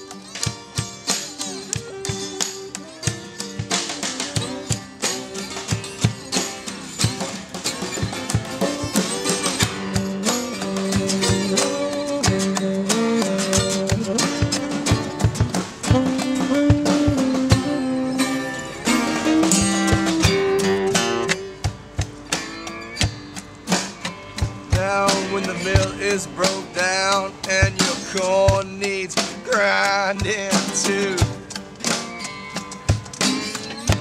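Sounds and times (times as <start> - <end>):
acoustic guitars strumming: 0.0 - 34.0
saxophone solo: 1.8 - 3.3, 10.2 - 15.3, 15.9 - 21.6.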